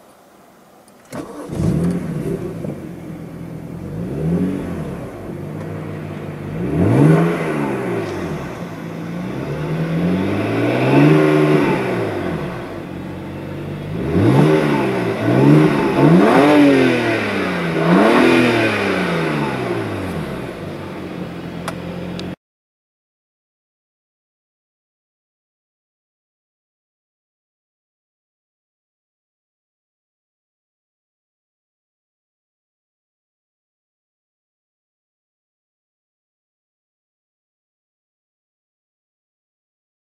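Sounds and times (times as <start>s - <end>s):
car engine starting: 0.8s - 22.4s
car engine idling and revving: 0.9s - 22.4s.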